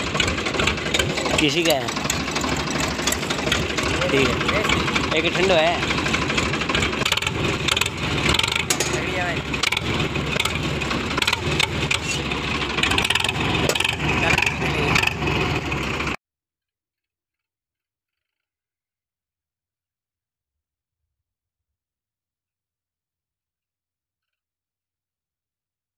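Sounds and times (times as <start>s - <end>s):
tractor engine open exhaust: 0.0s - 16.2s.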